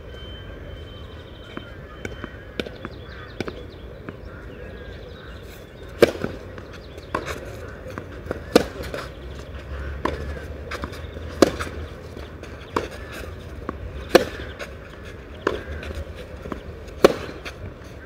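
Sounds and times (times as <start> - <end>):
tennis racket hitting ball: 6.0 - 6.4, 7.0 - 9.2, 10.0 - 17.7.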